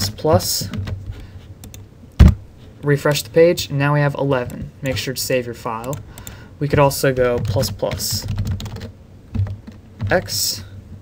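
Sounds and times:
computer keyboard keystrokes: 0:05.8 - 0:10.4.

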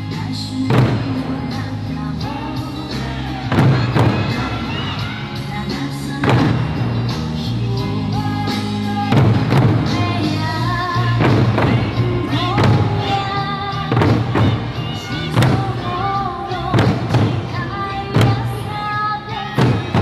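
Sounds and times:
folk song with singing: 0:00.0 - 0:20.0
large barrel drums beating: 0:00.4 - 0:01.8, 0:03.1 - 0:20.0.

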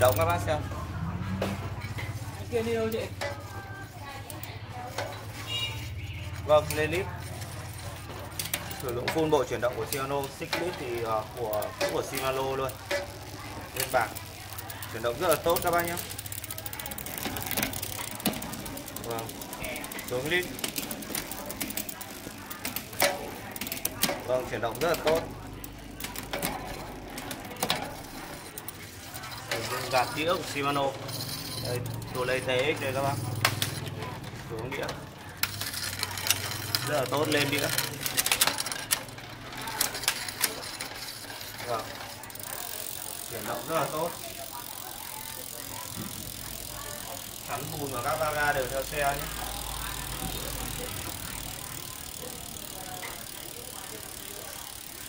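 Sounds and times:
bicycle chain ticking: 0:00.0 - 0:55.0.

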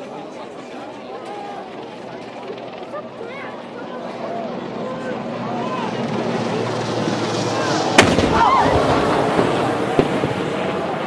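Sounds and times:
crowd chatter: 0:00.0 - 0:11.0
cannon firing blast: 0:08.0 - 0:10.8.

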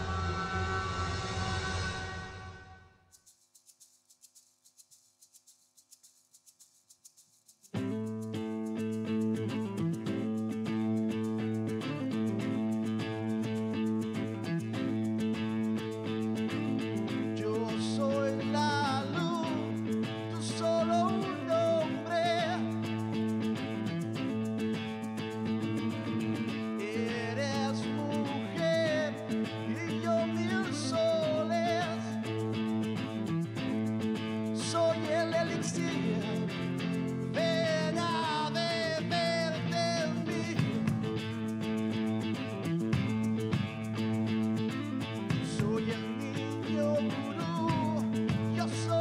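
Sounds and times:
bass guitar: 0:00.0 - 0:02.4, 0:07.8 - 0:49.0
wavering lead guitar line: 0:00.0 - 0:02.6, 0:07.8 - 0:49.0
electric guitar: 0:00.0 - 0:02.8, 0:07.8 - 0:49.0.

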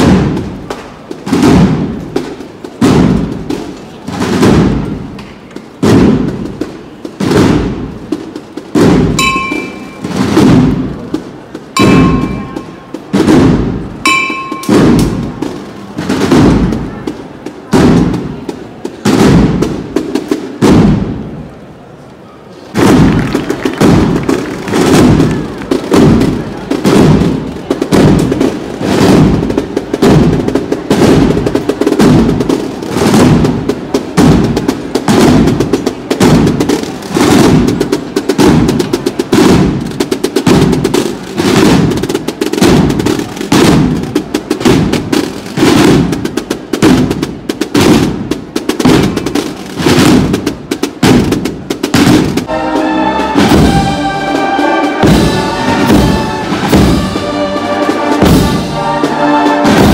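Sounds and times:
snare drums marching rhythm: 0:00.0 - 0:21.4, 0:22.8 - 0:59.9.

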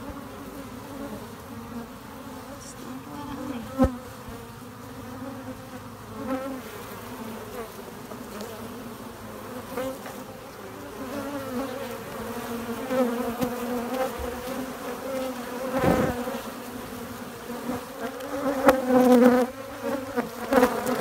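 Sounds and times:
bees buzzing: 0:00.0 - 0:21.0.

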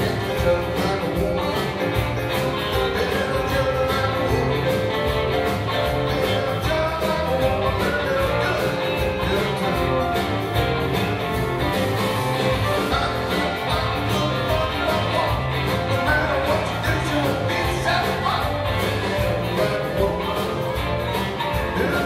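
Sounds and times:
live blues band playing: 0:00.0 - 0:22.0.

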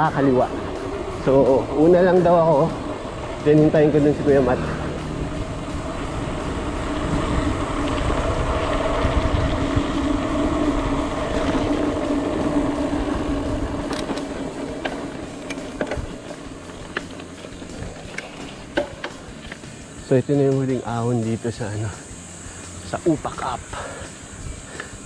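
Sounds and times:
wind rushing on microphone: 0:00.0 - 0:16.9
bike clicks and rattles: 0:00.0 - 0:25.0
bike tyres humming on road: 0:00.0 - 0:25.0.

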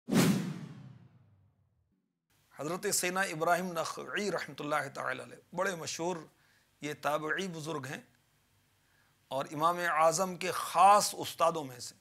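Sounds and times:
whoosh sound effect: 0:00.1 - 0:01.3.

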